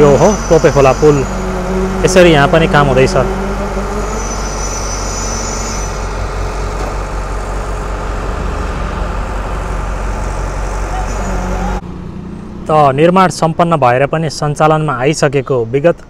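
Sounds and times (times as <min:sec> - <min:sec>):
diesel engine running: 0:00.0 - 0:13.5.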